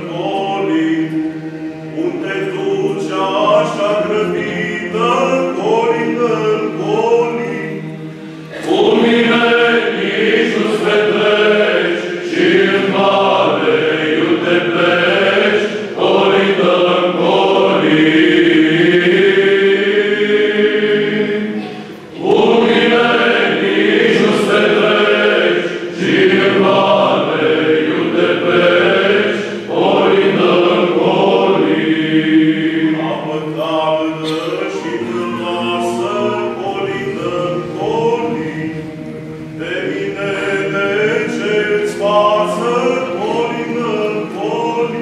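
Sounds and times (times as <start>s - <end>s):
male choir singing unaccompanied: 0.0s - 45.0s.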